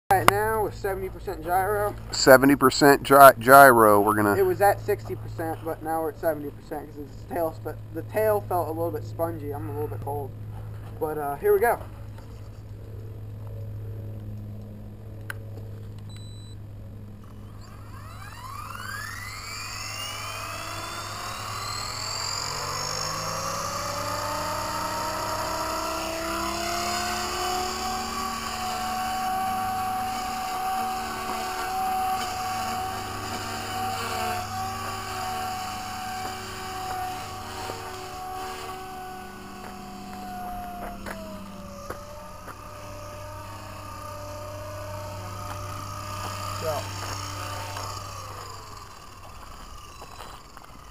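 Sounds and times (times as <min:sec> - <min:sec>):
rc helicopter rotor whine: 0:00.1 - 0:50.9
person speaking: 0:02.2 - 0:04.5.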